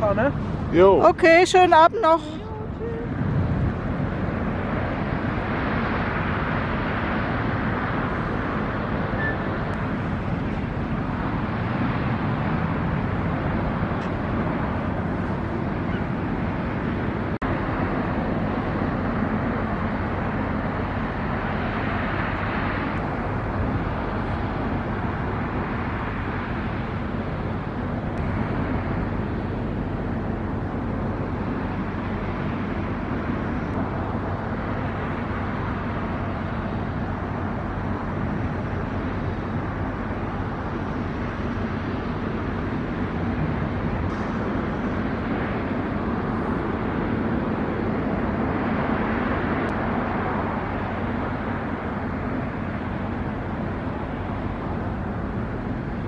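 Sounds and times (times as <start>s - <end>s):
constant outdoor rush: 0.0s - 56.0s.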